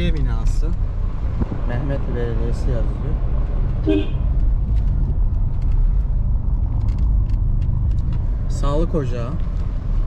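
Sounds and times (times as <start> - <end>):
car driving slowly from inside: 0.0 - 10.0.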